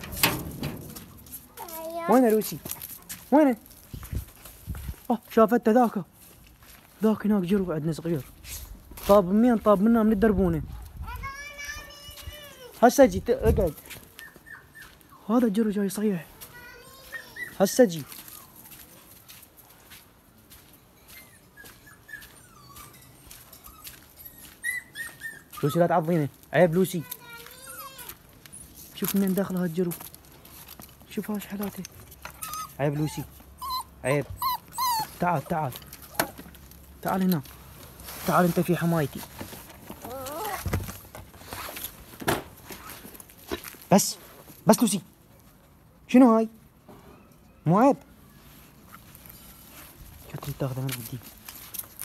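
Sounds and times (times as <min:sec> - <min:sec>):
puppy whimpering: 0:14.2 - 0:15.3, 0:17.0 - 0:18.6, 0:21.2 - 0:26.0, 0:27.5 - 0:28.8, 0:32.3 - 0:36.3, 0:40.0 - 0:40.6.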